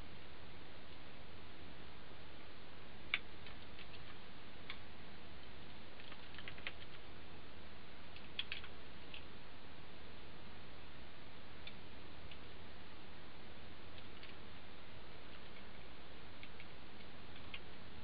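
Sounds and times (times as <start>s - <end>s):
steady room hum: 0.0s - 18.0s.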